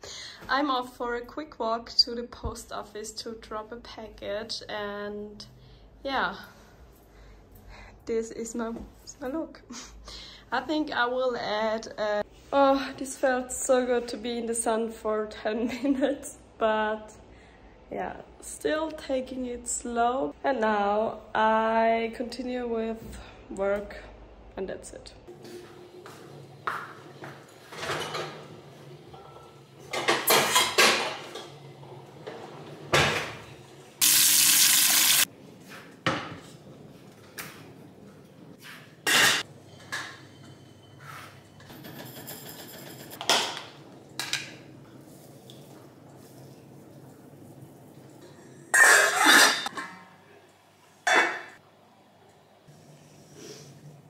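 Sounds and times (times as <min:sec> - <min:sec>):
kitchenware clanking: 0:26.8 - 0:31.6, 0:39.0 - 0:44.6, 0:51.0 - 0:51.6.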